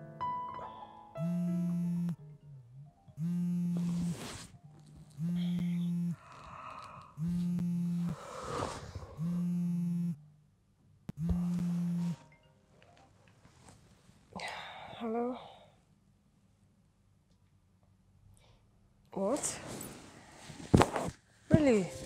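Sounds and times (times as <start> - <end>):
mobile phone buzzing: 1.2 - 2.2, 3.2 - 4.4, 5.2 - 6.3, 7.2 - 10.2, 11.1 - 12.3
person groaning: 5.2 - 9.2.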